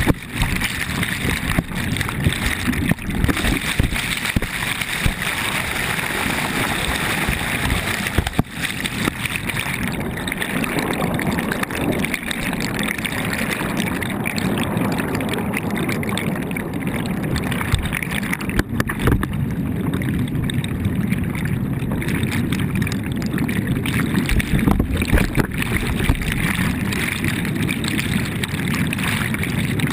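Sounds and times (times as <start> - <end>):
water rushing and bubbling: 0.0 - 29.9.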